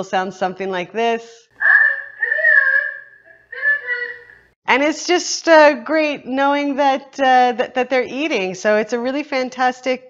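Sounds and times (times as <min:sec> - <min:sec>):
recorded woman calling a pet: 0:01.6 - 0:04.3.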